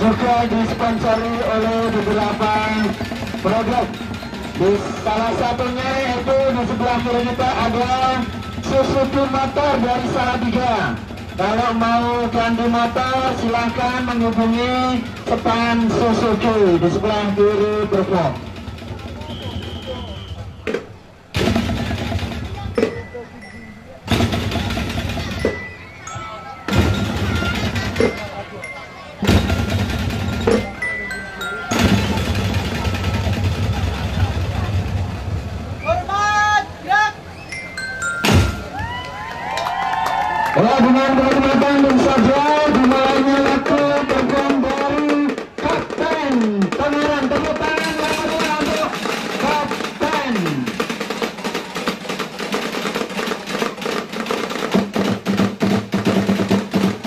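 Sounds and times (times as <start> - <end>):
barrel drums and cans rhythm: 0.0 - 35.5, 36.1 - 39.0, 40.6 - 57.0.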